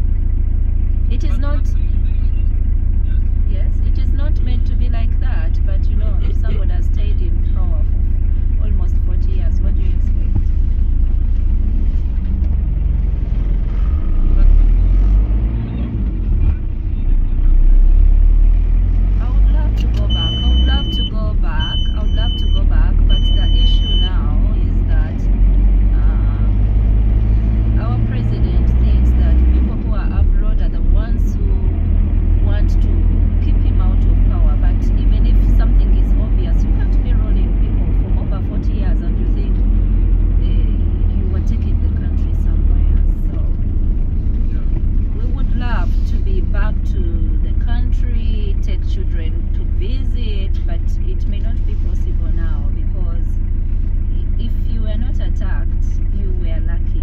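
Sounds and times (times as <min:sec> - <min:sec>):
car engine and road rumble: 0:00.0 - 0:57.0
high beeps: 0:19.8 - 0:24.2.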